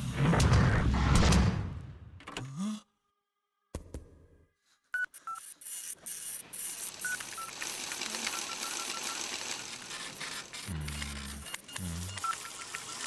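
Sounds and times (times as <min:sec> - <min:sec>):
phone keypad beeps: 0:11.3 - 0:13.0.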